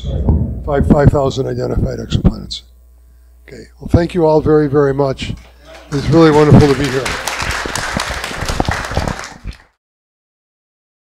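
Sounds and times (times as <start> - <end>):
audience applauding: 5.5 - 9.8.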